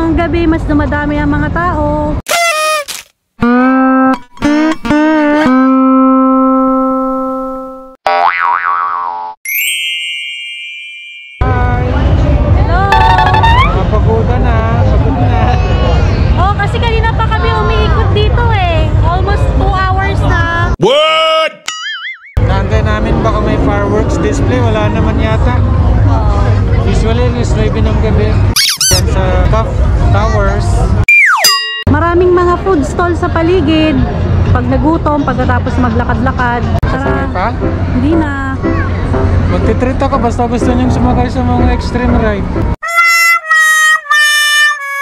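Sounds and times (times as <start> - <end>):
falling squeaky boing effect: 8.1 - 9.4, 13.0 - 13.8, 28.6 - 29.1, 31.1 - 31.8
crowd chatter: 11.7 - 20.8, 32.6 - 39.7
held guitar-like note: 12.9 - 13.9
wobbling pitch-bending tone: 12.9 - 14.0, 28.6 - 29.1, 31.1 - 31.8.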